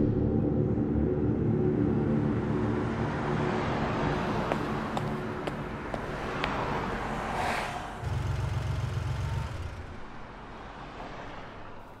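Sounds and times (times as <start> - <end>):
car engine pulling away: 4.4 - 11.4.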